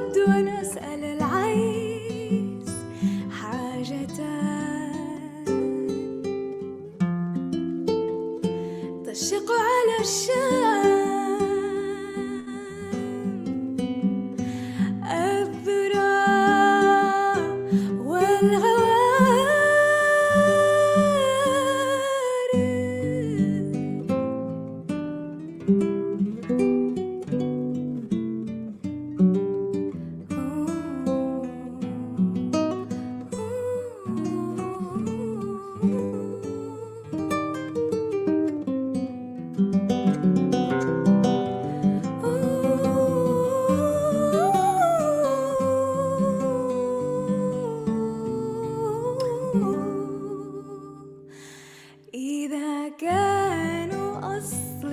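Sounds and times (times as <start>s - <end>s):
plucked acoustic guitar: 0.0s - 51.4s
woman singing a long note: 15.0s - 24.0s, 33.4s - 37.4s, 42.2s - 51.2s.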